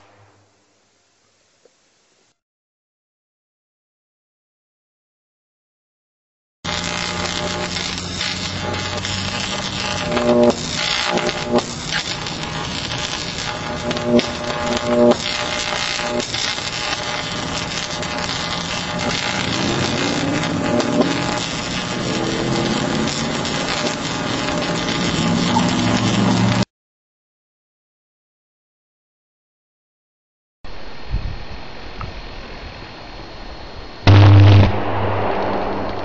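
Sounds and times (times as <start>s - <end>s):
harsh electrical arcing noise: 6.7s - 26.7s, 34.1s - 36.0s.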